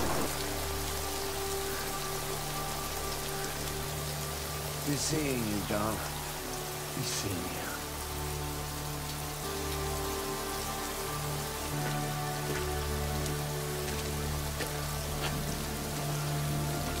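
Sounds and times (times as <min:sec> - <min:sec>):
low sustained film score notes: 0:00.0 - 0:17.0
steady rain falling: 0:00.0 - 0:17.0.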